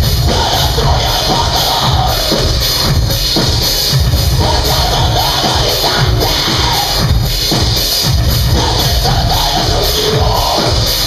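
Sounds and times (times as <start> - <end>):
live industrial metal band: 0.0 - 11.0.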